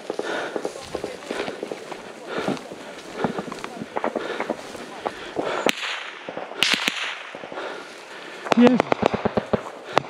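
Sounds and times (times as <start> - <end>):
footsteps through dry wheat: 0.0 - 5.7, 7.4 - 8.6
gunfire cracks: 2.7 - 7.8, 8.4 - 10.0.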